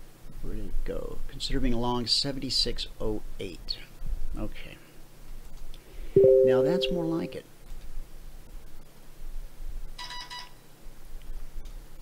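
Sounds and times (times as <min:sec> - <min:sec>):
message notification chime: 0:06.2 - 0:07.4.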